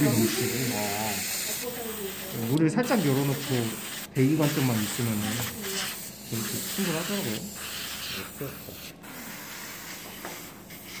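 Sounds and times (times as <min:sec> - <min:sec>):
airbrush spraying: 0:00.0 - 0:11.0.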